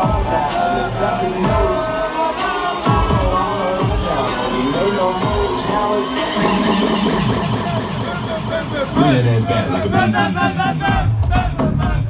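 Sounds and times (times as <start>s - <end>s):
loud club dance music: 0.0s - 12.0s
sliding bass notes: 2.9s - 11.4s.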